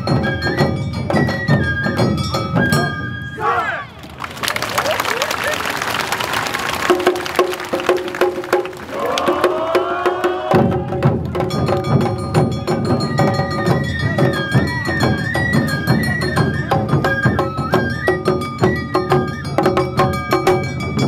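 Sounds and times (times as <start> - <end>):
sharp percussion beats: 0.0 - 3.2, 6.4 - 21.0
flute melody: 0.0 - 4.0, 12.3 - 21.0
crowd shouting and cheering: 3.3 - 11.2.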